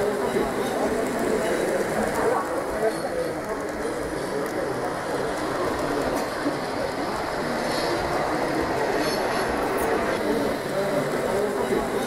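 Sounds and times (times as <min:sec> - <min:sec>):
model train wheels on rails: 0:00.0 - 0:12.0.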